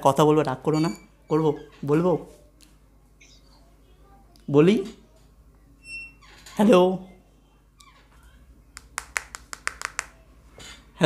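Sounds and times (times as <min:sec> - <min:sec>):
sharp clicks or taps: 0:08.8 - 0:10.1.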